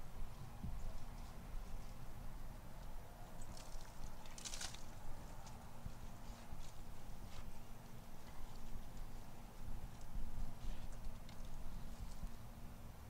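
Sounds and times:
hands rustling in potting soil: 0:00.0 - 0:12.6
steady low rumble: 0:00.0 - 0:13.0.

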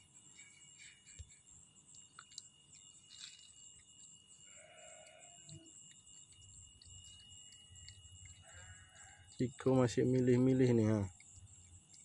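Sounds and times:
faint animal call: 0:04.4 - 0:05.8, 0:08.3 - 0:09.7.

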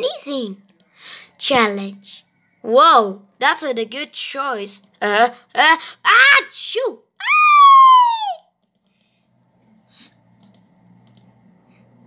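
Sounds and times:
child squealing pretend sneeze: 0:07.2 - 0:08.5.

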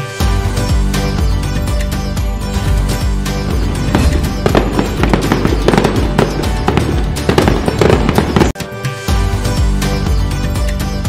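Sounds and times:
festive music: 0:00.0 - 0:11.0
firework bangs and crackles: 0:03.2 - 0:08.6.

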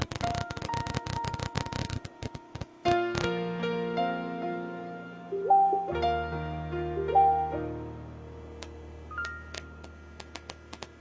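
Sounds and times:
small clicks: 0:00.0 - 0:03.3, 0:08.6 - 0:11.0
soft piano ballad: 0:00.0 - 0:11.0.

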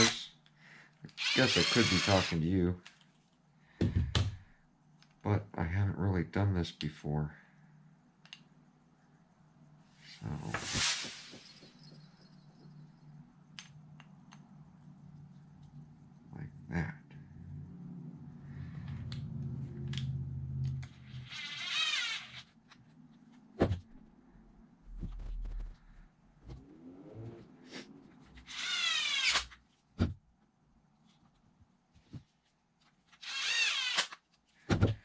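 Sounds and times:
electric screwdriver motor whine: 0:01.2 - 0:02.4, 0:28.4 - 0:29.6.

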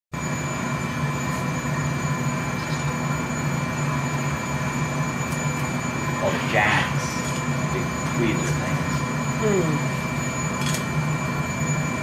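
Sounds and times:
blower fans running: 0:00.2 - 0:12.0
constant hum tones: 0:00.2 - 0:12.0
gas burners roaring: 0:00.2 - 0:12.0.

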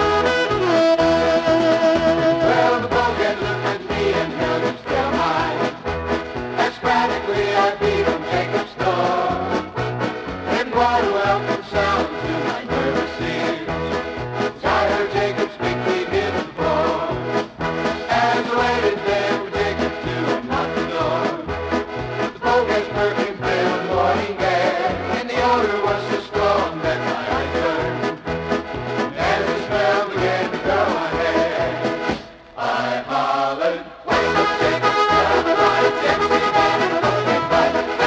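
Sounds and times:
polka band music: 0:00.0 - 0:38.0.

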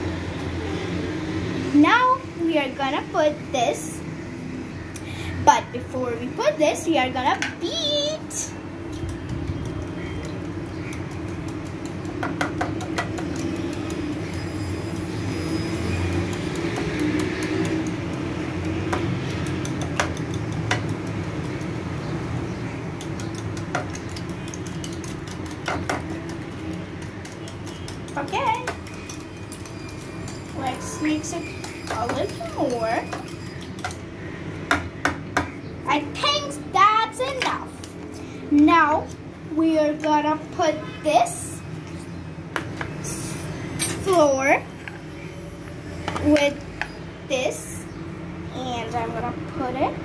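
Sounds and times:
whisk beating batter in bowl: 0:08.6 - 0:34.0.

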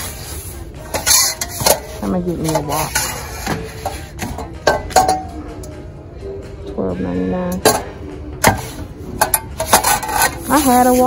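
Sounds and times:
metal pans knocking and clinking: 0:00.8 - 0:05.4, 0:07.6 - 0:11.0.

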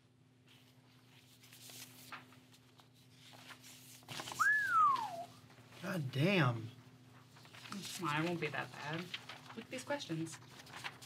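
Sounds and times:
person whistling falling note: 0:04.4 - 0:05.4.

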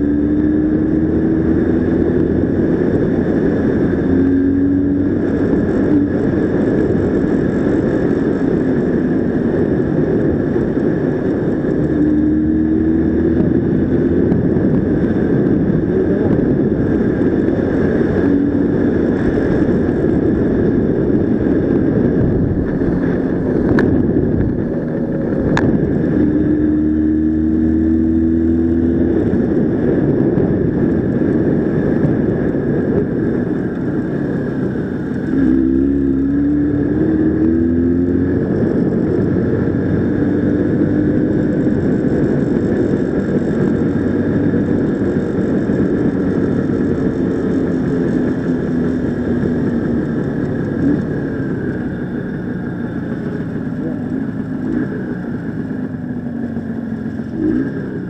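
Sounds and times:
motorcycle engine running: 0:00.0 - 0:58.0
wind noise on microphone: 0:00.0 - 0:58.0.

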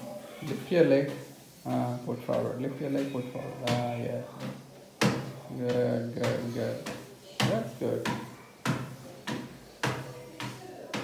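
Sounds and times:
footsteps on treadmill: 0:00.0 - 0:11.0.

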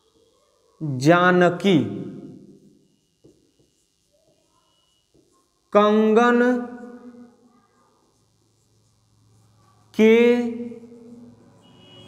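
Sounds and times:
man's voice: 0:00.8 - 0:02.3, 0:05.8 - 0:06.9, 0:10.0 - 0:11.1
marker scratching on whiteboard: 0:02.5 - 0:05.6, 0:07.7 - 0:10.0.

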